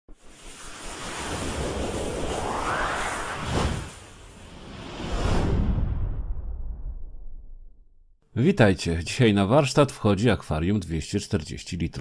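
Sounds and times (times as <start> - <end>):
rushing whoosh: 0.2 - 7.5.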